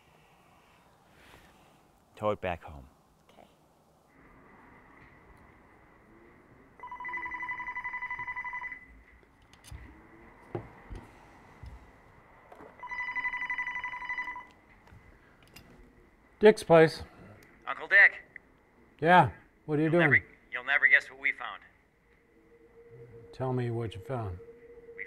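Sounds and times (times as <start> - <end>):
telephone ringing: 6.8 - 9.0, 12.8 - 14.6.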